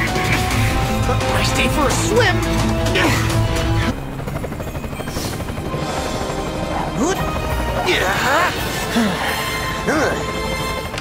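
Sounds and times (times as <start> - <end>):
helicopter rotor chopping: 0.0 - 11.0.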